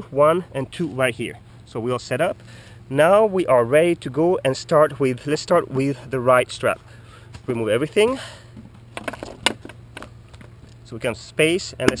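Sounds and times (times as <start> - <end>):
handling knocks and clicks: 8.6 - 10.8, 11.8 - 12.0.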